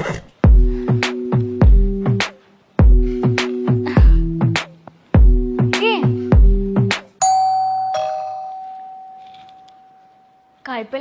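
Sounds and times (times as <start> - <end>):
heavy bass music beat: 0.4 - 7.1
two-note doorbell chime: 7.2 - 10.6.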